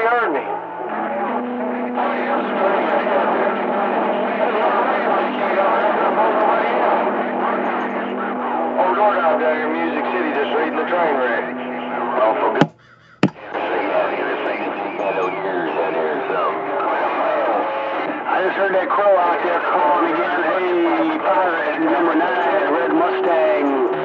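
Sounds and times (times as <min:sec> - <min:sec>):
garbled radio voices: 0:00.0 - 0:24.0
radio static: 0:00.0 - 0:24.0
radio signal clicks: 0:00.5 - 0:18.3.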